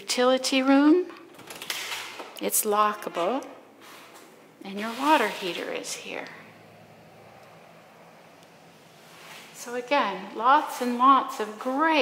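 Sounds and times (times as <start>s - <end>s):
low hum: 3.4s - 11.6s.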